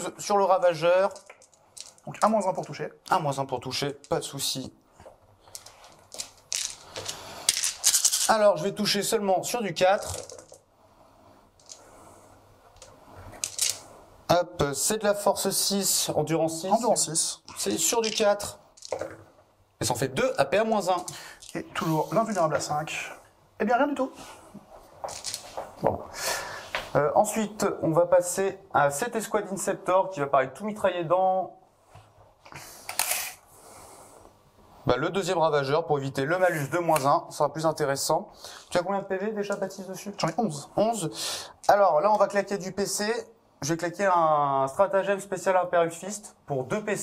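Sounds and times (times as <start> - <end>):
dice clattering: 1.0 - 2.7, 5.5 - 8.3, 9.9 - 10.6, 11.6 - 11.8, 13.4 - 13.8, 17.6 - 19.2, 20.3 - 22.6, 25.0 - 25.6
dice shaken in hands: 1.0 - 2.7, 5.5 - 8.4, 9.9 - 10.6, 11.6 - 11.8, 13.4 - 13.8, 17.6 - 19.2, 25.0 - 25.6
tape measure rasping rattle: 5.5 - 8.4.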